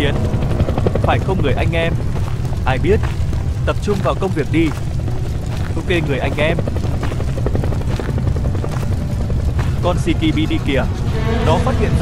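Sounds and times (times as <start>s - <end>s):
helicopter rotor beating: 0.0s - 12.0s
low rumble: 0.0s - 12.0s.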